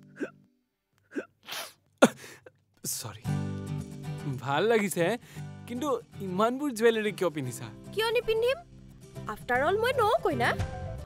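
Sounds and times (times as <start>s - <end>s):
faint background music: 2.8s - 11.0s.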